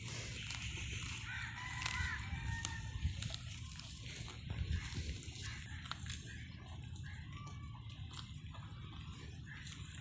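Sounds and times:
low background rumble: 0:00.0 - 0:10.0
bird calling: 0:04.3 - 0:10.0.

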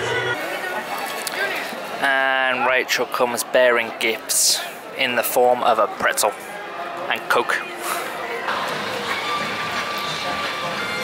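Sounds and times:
music playing: 0:00.0 - 0:00.4, 0:07.4 - 0:11.0
background noise: 0:00.0 - 0:11.0.

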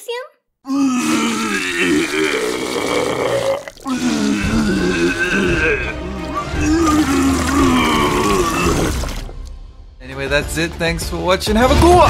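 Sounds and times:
cartoon voice retching: 0:00.7 - 0:09.3.

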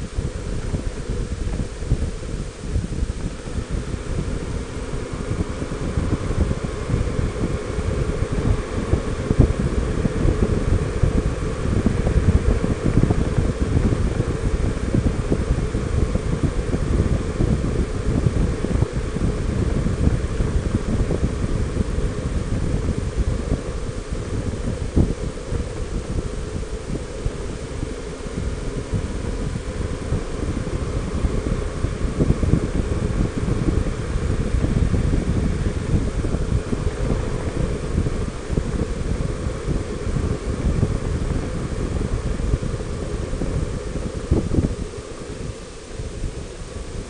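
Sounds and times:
motorcycle road noise: 0:00.0 - 0:46.6
wind buffeting microphone: 0:00.0 - 0:47.0.

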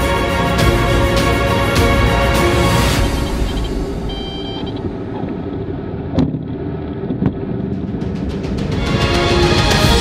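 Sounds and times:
aircraft engines rumbling: 0:00.1 - 0:10.0.

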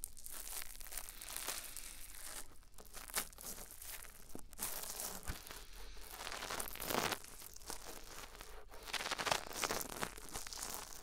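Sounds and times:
brush scratching on microphone: 0:02.2 - 0:11.0.

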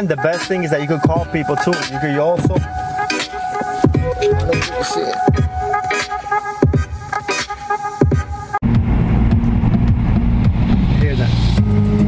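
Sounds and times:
electronic music over car radio: 0:00.0 - 0:12.0
car engine rumble: 0:08.6 - 0:12.0.

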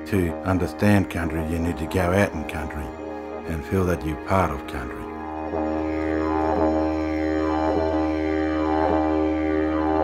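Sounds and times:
didgeridoo drone: 0:00.0 - 0:10.0.

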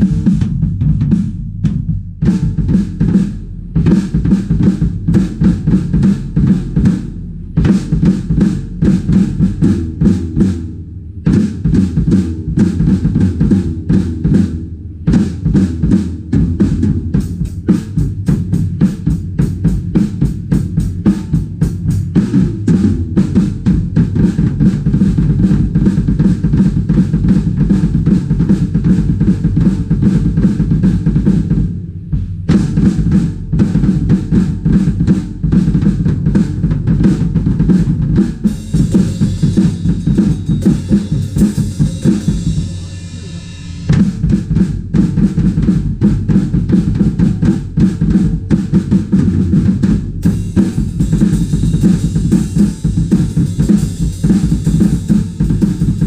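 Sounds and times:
snare and tom hits: 0:00.0 - 0:03.3, 0:11.3 - 0:25.2
double pedal bass drum: 0:00.0 - 0:56.0
cymbal wash: 0:38.5 - 0:44.3.

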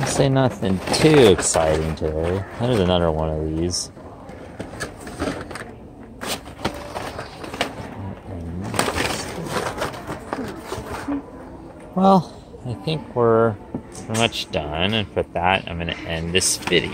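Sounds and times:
plastic packaging clicks and rustles: 0:00.0 - 0:11.2.

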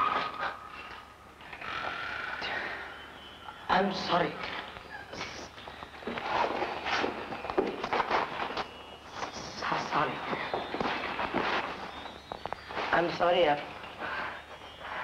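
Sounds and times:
voices talking: 0:08.6 - 0:15.0.

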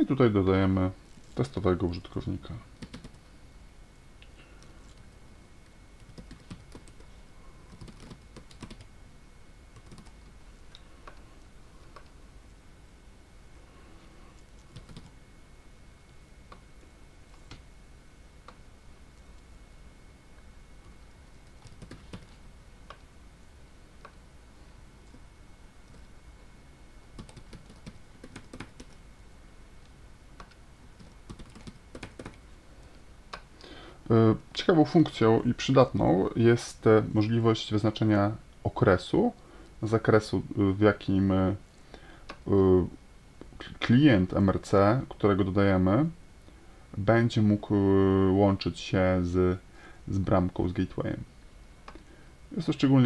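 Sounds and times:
computer keyboard typing: 0:02.8 - 0:03.2, 0:06.0 - 0:07.1, 0:07.7 - 0:08.9, 0:09.8 - 0:10.2, 0:14.6 - 0:15.1, 0:21.5 - 0:22.3, 0:27.2 - 0:29.0, 0:30.4 - 0:32.4
faint keyboard typing: 0:02.8 - 0:03.3, 0:04.2 - 0:08.9, 0:09.7 - 0:12.2, 0:14.3 - 0:15.2, 0:17.3 - 0:17.7, 0:20.4 - 0:23.1, 0:25.0 - 0:26.2, 0:27.1 - 0:29.0, 0:29.8 - 0:33.5.

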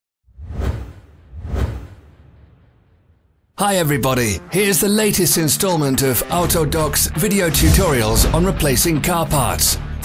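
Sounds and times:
whoosh sound effects: 0:00.3 - 0:03.2.

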